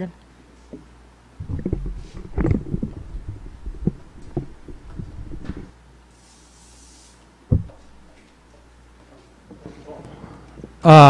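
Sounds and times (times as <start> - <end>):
low steady hum: 0.0 - 5.9, 7.4 - 9.0
microphone handling thumps: 1.4 - 5.7, 7.5 - 8.0.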